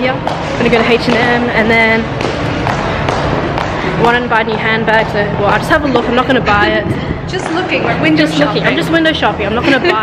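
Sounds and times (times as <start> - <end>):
footsteps on hard stairs: 0.0 - 6.6.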